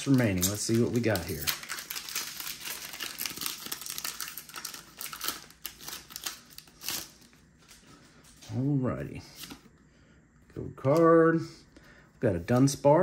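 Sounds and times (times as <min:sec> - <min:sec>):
foil wrapper crinkling and tearing: 0:00.0 - 0:07.4.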